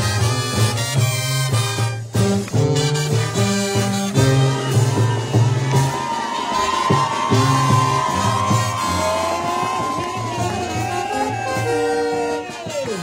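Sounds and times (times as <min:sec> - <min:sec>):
brass band playing: 0:00.0 - 0:13.0
crowd cheering: 0:02.3 - 0:13.0.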